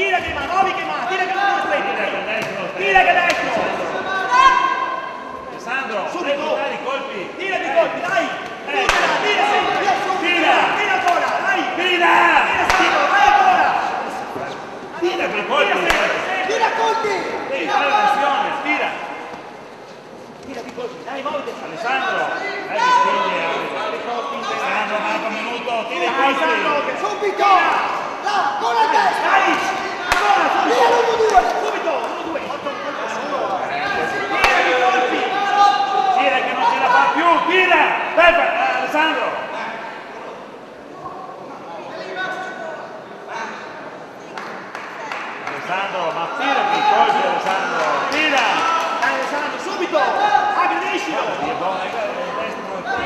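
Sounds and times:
men shouting: 7.4 - 14.2, 25.9 - 39.3.

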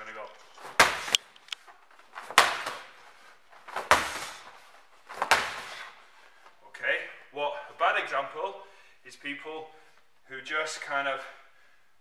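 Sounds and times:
medicine ball thudding against wall: 0.6 - 1.2, 2.2 - 2.9, 3.7 - 4.4, 5.1 - 5.9.

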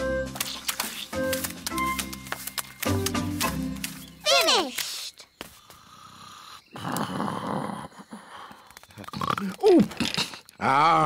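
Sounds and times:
cartoon character snoring: 5.8 - 8.5.

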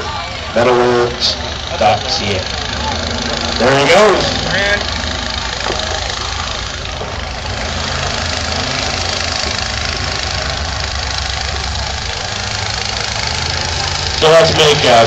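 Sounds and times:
car engine running: 0.0 - 15.0
noisy background: 0.0 - 15.0.

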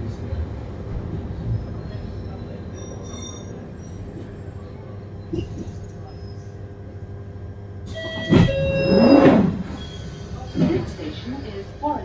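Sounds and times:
train carriage hum: 0.0 - 12.0.

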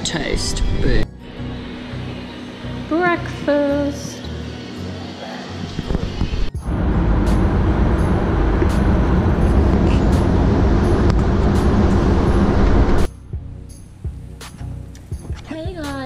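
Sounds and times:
road noise: 4.2 - 13.1
wind buffeting: 6.5 - 13.1.

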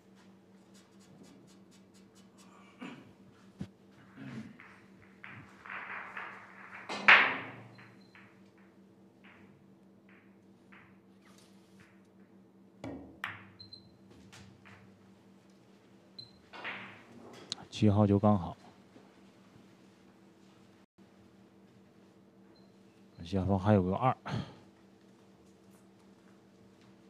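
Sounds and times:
billiard balls clicking: 4.5 - 17.6.

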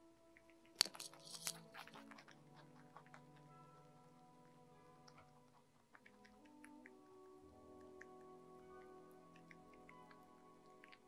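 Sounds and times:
rabbit chewing: 0.0 - 11.0
soft background music: 0.0 - 11.0.

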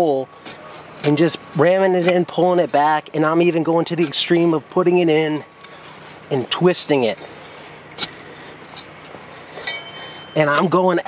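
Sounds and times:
thin steady high tone: 4.6 - 11.0
metallic clink of broadfork: 9.6 - 10.6.

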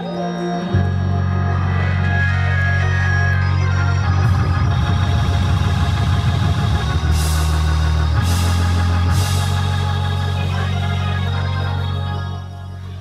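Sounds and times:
heavy bass line: 0.0 - 13.0
organ playing chords: 0.0 - 13.0
drums: 4.1 - 10.9.

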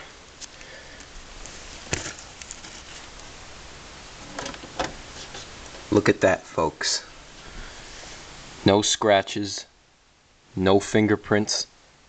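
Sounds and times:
steady hiss: 0.0 - 12.0
handling knocks and clicks: 4.2 - 5.9.

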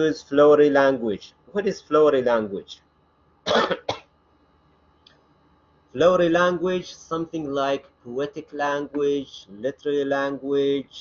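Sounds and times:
man coughing: 3.4 - 4.1.

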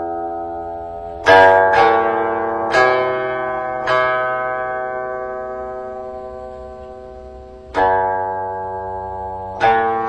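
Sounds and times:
plucked string instrument notes: 0.0 - 10.0.

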